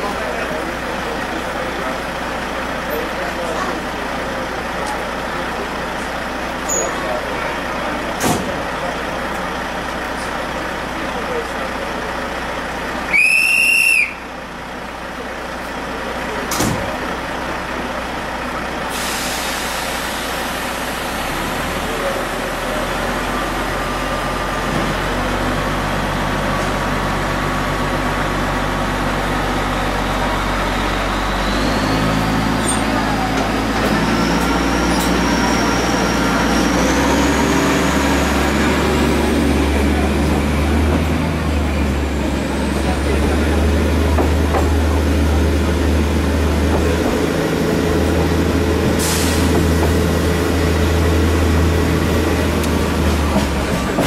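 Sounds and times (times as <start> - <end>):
locomotive engine hum: 0.0 - 54.0
passenger chatter: 0.0 - 54.0
train whistle blast: 13.1 - 14.2.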